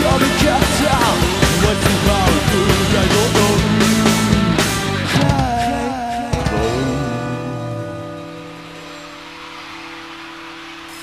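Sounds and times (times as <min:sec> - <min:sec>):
rock band final chord: 0:00.0 - 0:09.2.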